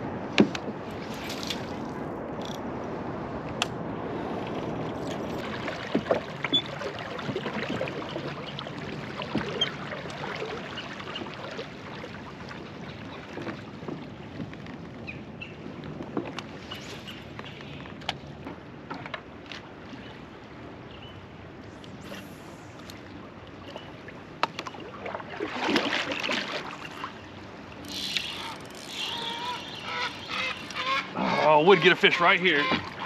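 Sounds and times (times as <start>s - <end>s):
water rushing against kayak hull: 0.0s - 33.0s
light knocks on hull: 9.2s - 9.6s.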